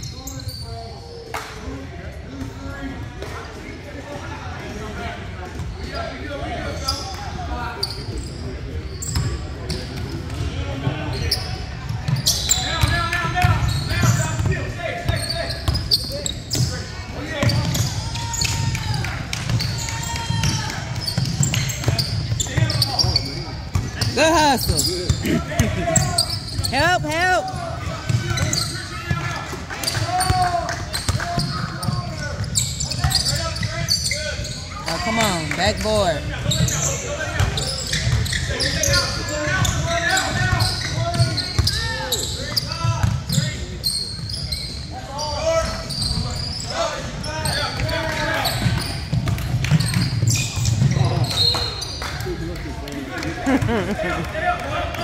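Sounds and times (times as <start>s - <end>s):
sneakers squeaking: 0.0s - 1.3s, 4.6s - 52.3s
basketball bouncing on court: 17.4s - 33.8s
people calling out: 24.1s - 27.6s.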